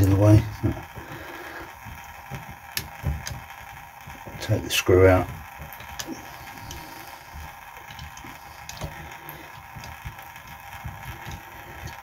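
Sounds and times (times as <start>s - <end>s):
handling noise: 0.0s - 12.0s.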